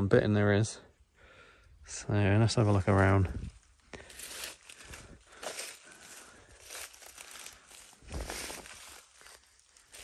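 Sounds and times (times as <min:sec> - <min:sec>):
footsteps in dry leaves: 0:02.6 - 0:10.0.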